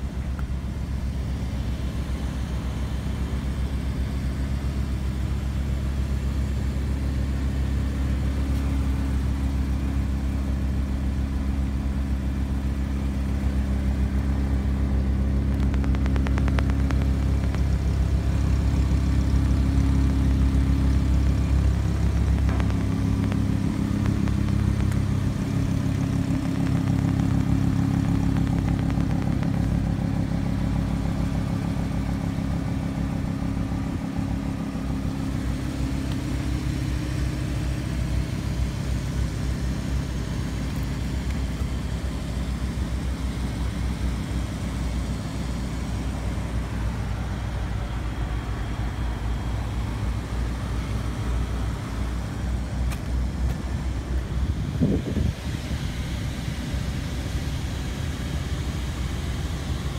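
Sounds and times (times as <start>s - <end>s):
car engine idling: 0.0s - 59.9s.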